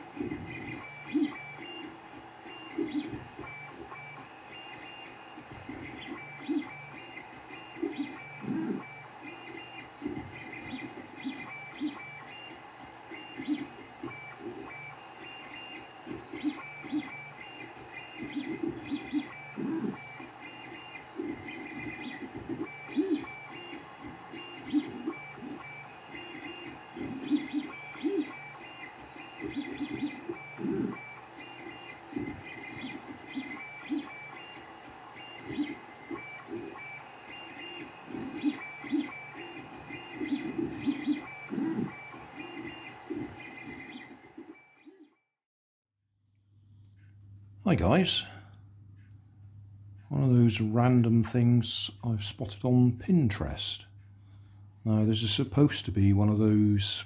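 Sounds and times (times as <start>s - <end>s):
printer stepper motors: 0.0s - 45.2s.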